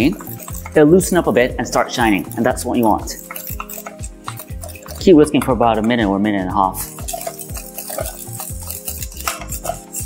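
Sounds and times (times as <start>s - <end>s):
whisk scraping metal saucepan: 0.0s - 10.0s.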